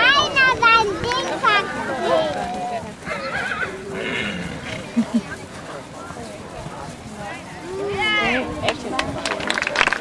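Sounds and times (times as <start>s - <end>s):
horse whinnying: 3.1s - 4.8s.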